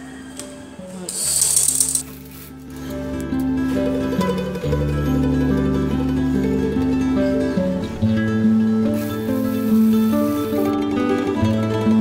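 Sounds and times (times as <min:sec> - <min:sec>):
soft background music: 0:00.0 - 0:12.0
sewing machine running: 0:01.1 - 0:02.1.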